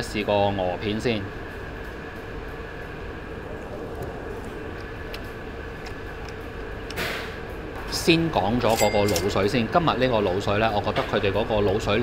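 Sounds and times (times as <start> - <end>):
ventilation hum: 0.0 - 12.0.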